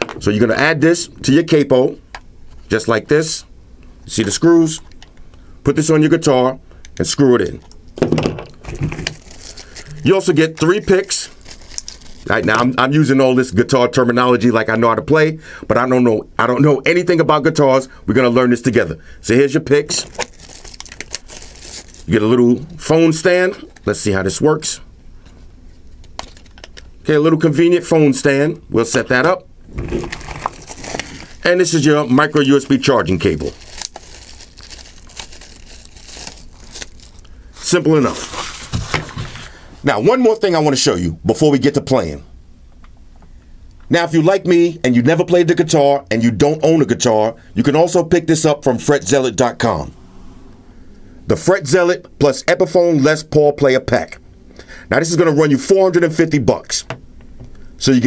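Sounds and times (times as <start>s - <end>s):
packaging rustling and clicks: 8.5s - 12.3s, 19.9s - 22.1s, 26.0s - 26.9s, 29.7s - 37.3s, 38.0s - 39.5s
plastic bag crinkling: 8.5s - 12.8s, 19.9s - 22.4s, 29.7s - 39.5s.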